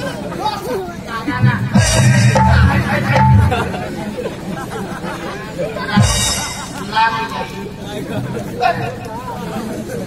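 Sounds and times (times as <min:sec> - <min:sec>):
stage music: 0:01.3 - 0:04.2, 0:05.9 - 0:07.6.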